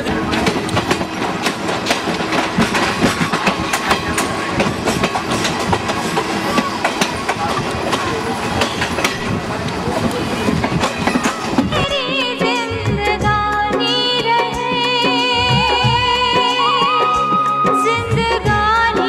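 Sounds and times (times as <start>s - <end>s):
clacks over rail joints: 0.0s - 12.0s
train wheels rumbling on rails: 0.0s - 16.2s.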